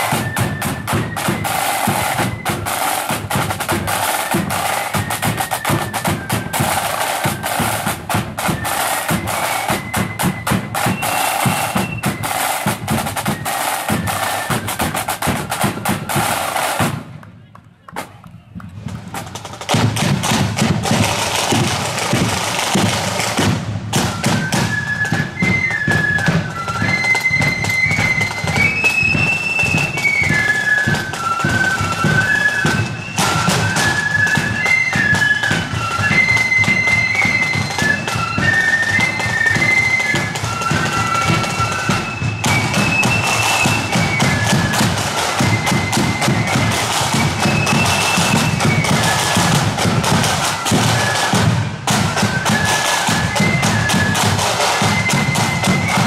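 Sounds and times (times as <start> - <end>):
flute melody: 0.0 - 17.5, 18.3 - 56.0
snare and bass drums: 0.0 - 56.0.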